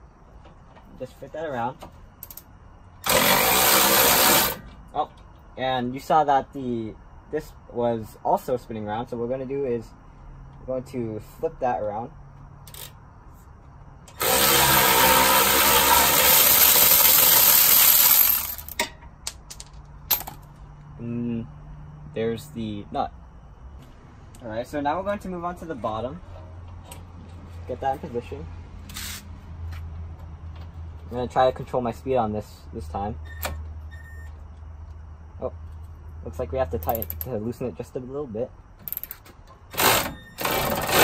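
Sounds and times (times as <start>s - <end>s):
low background hum: 0.0s - 16.8s, 18.0s - 41.0s
cordless power tool running: 3.0s - 4.6s, 14.2s - 18.7s
sharp metallic click: 36.8s - 37.3s.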